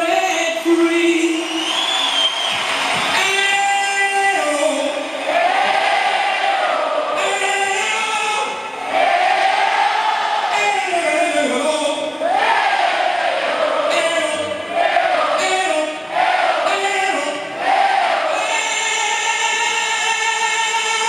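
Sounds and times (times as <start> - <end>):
voices singing held notes: 4.3 - 21.0.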